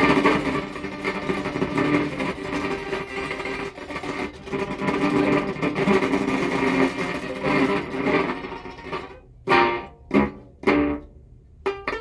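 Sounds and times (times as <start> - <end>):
overdriven electric guitar: 0.0 - 12.0.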